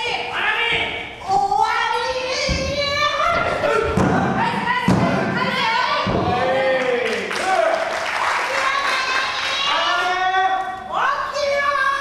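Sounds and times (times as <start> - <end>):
women shouting: 4.5 - 6.5.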